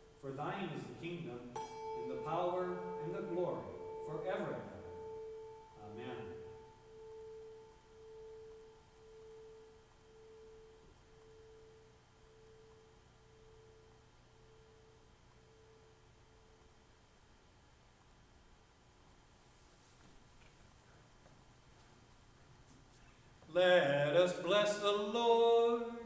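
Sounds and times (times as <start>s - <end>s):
handbell ringing: 1.6s - 8.5s.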